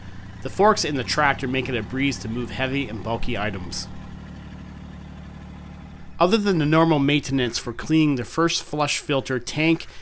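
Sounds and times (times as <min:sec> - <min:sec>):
tractor diesel engine humming: 0:00.0 - 0:10.0.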